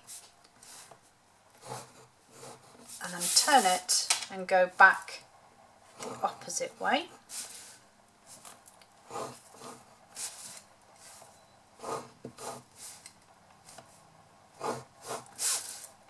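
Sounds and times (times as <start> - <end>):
stylus scratching on cardstock: 1.6 - 3.8, 9.0 - 9.9, 11.8 - 12.7, 14.6 - 15.7.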